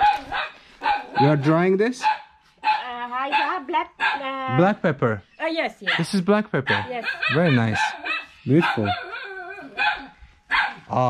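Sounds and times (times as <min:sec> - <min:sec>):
dog barking: 0:00.0 - 0:04.4, 0:05.8 - 0:10.9.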